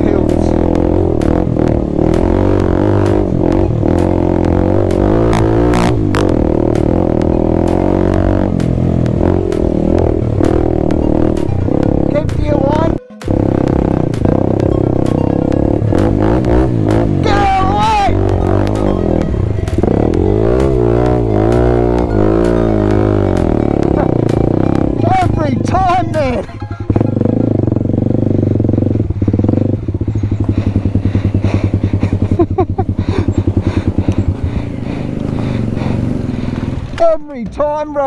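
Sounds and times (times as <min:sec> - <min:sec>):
motorcycle engine running: 0:00.0 - 0:37.3.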